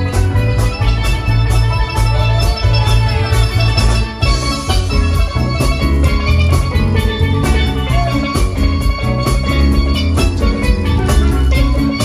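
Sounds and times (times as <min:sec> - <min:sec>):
live band playing dance music: 0:00.0 - 0:12.0.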